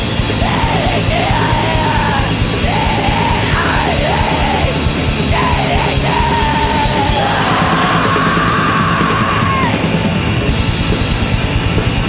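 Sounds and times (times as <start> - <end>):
punk band playing: 0.0 - 12.0.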